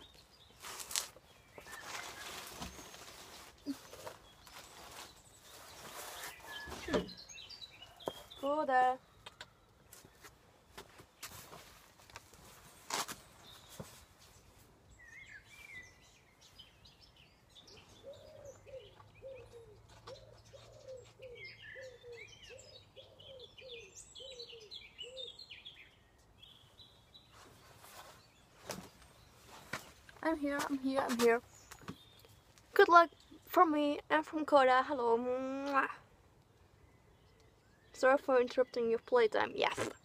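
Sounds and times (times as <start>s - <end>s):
high bird chirps: 0.0s - 9.6s.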